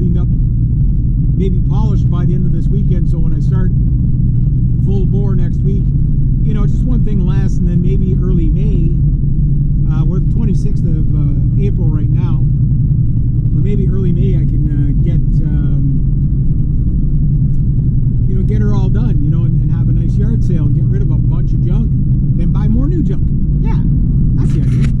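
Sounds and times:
person talking: 0.0s - 0.4s, 1.4s - 3.7s, 4.8s - 9.0s, 9.9s - 12.4s, 13.6s - 16.0s, 18.3s - 25.0s
car engine and road rumble: 0.0s - 25.0s.

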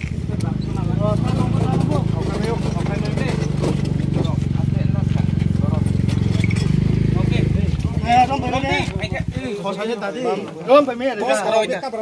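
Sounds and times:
vehicle engine idling: 0.0s - 10.0s
men talking: 0.2s - 12.0s.

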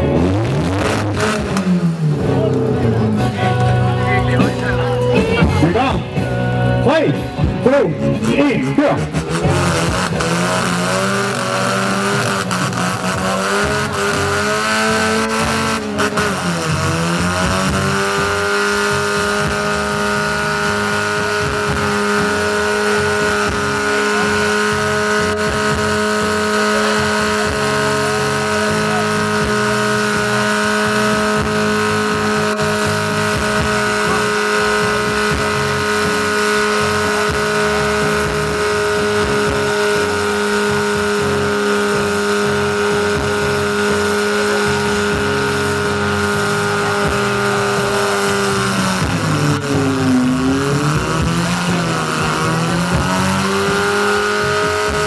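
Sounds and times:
car engine at high revs: 0.0s - 55.0s.

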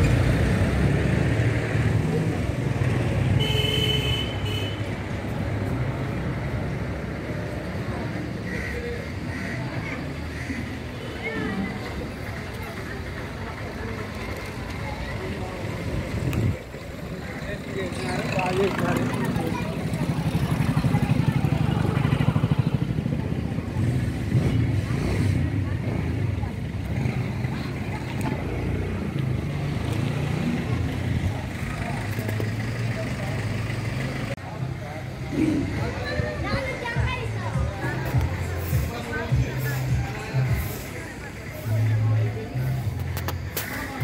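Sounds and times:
people talking: 5.3s - 44.0s
vehicle engine running: 11.8s - 44.0s.

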